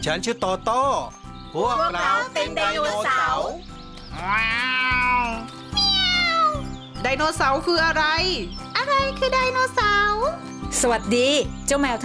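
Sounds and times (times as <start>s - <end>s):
background music: 0.0s - 12.0s
cat meowing: 4.1s - 6.7s.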